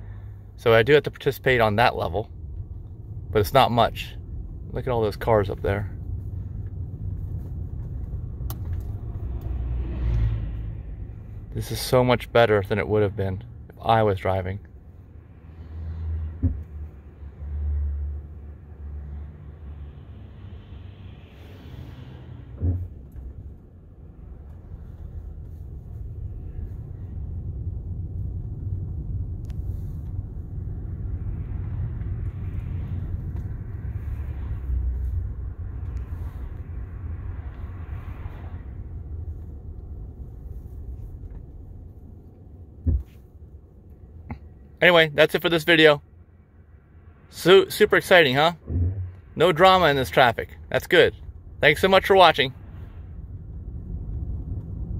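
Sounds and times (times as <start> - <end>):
road and tyre rumble: 0.0 - 54.9.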